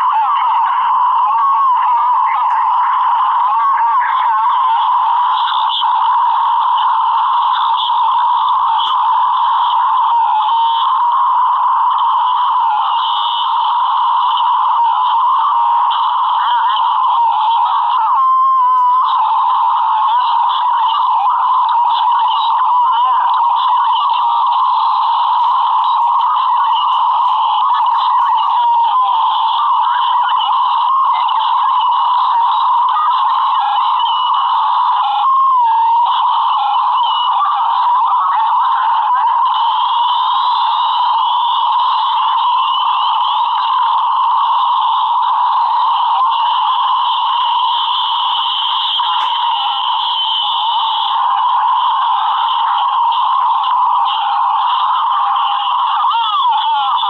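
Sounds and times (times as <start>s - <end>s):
distorted garbled video soundtrack: 0.0s - 57.0s.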